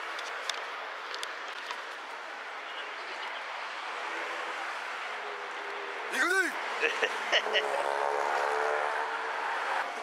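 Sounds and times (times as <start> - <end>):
laughter: 6.8 - 7.8.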